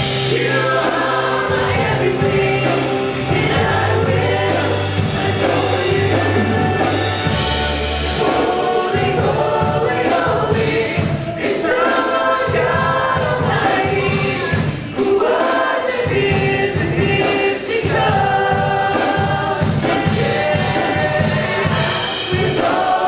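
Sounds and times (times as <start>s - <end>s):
people singing together: 0.0s - 23.0s
worship band playing: 0.0s - 23.0s.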